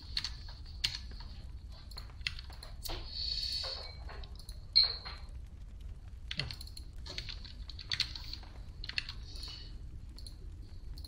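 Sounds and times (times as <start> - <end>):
typing on computer keyboard: 6.3 - 9.5.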